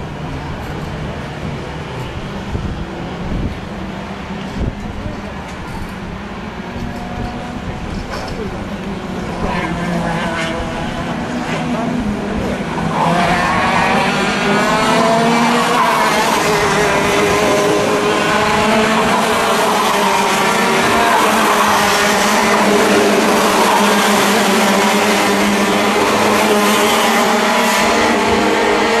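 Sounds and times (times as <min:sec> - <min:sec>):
racing kart engines: 0:00.0 - 0:29.0.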